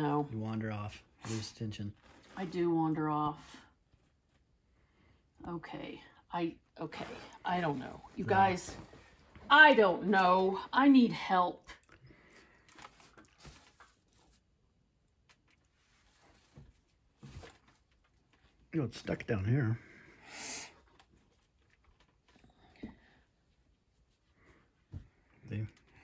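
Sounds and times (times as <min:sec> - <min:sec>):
woman speaking: 0:02.4 - 0:03.6, 0:05.4 - 0:11.8
faint taps and fabric rustles: 0:07.6 - 0:09.8, 0:15.2 - 0:18.6, 0:21.0 - 0:26.0
faint handling sounds: 0:12.2 - 0:18.8.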